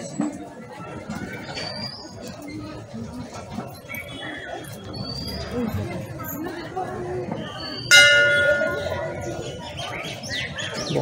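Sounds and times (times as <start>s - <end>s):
crowd chatter: 0.0s - 11.0s
metal temple bell ringing: 7.9s - 9.4s.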